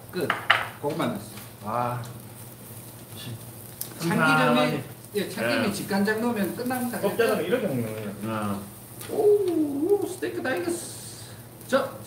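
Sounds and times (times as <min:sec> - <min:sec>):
meat sizzling on a grill: 0:00.0 - 0:12.0.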